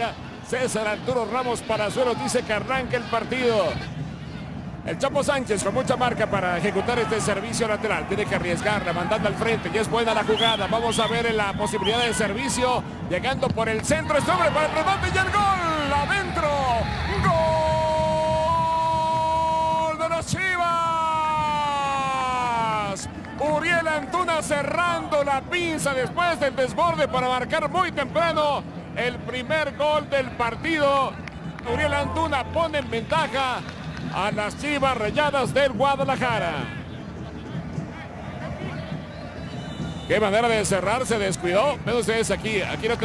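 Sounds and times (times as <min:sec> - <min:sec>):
commentator shouting goal call: 0:31.7 - 0:33.6.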